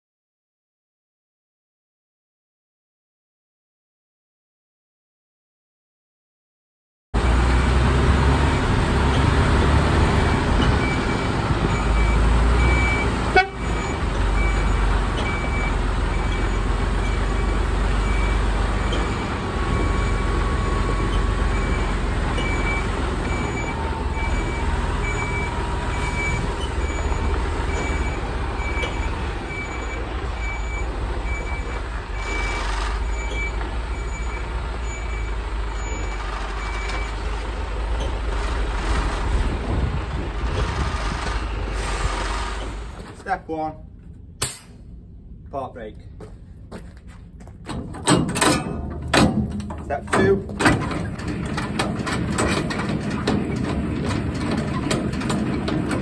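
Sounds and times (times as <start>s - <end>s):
diesel engine rumbling: 7.2s - 56.0s
reversing alarm beeping: 10.2s - 37.2s.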